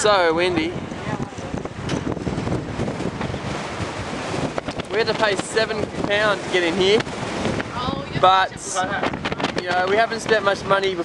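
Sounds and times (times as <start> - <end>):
strong wind on microphone: 0.0 - 11.0.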